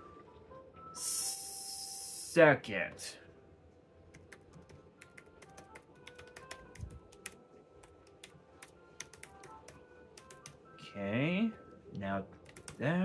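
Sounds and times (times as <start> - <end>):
typing on computer keyboard: 4.1 - 10.6, 12.4 - 12.8.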